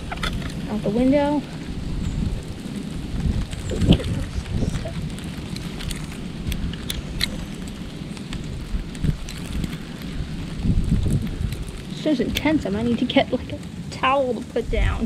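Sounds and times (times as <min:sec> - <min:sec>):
wind rushing across microphone: 0:00.0 - 0:15.0
small ticks: 0:02.8 - 0:13.7.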